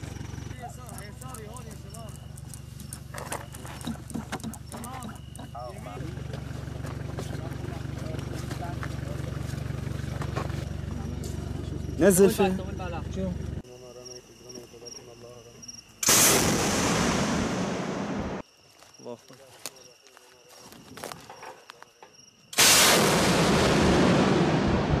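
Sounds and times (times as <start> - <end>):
rocket launch roar: 16.0 - 18.4, 22.6 - 25.0.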